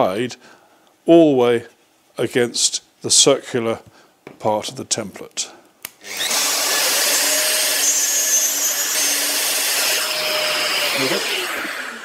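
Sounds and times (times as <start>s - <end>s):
router cutting wood: 6.0s - 12.0s
router motor winding down: 6.0s - 12.0s.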